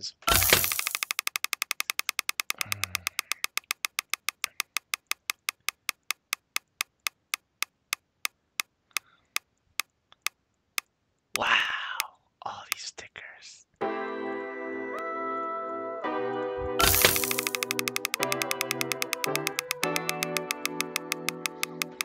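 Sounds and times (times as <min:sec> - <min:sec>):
rapid slowing ticks: 0:00.6 - 0:12.1, 0:16.8 - 0:22.0.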